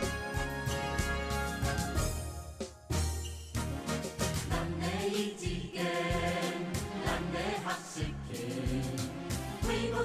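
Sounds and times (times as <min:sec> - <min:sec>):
choir singing: 0:04.4 - 0:10.0.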